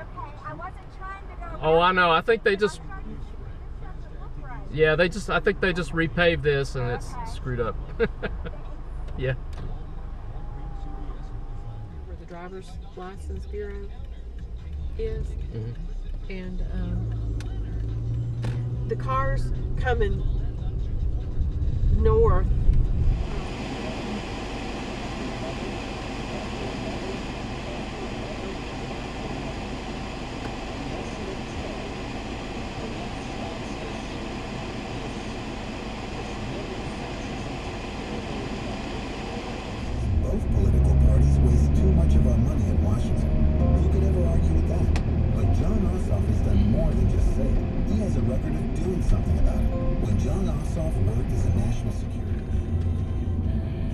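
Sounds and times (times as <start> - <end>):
car engine and tyres rumbling: 0.0 - 53.9.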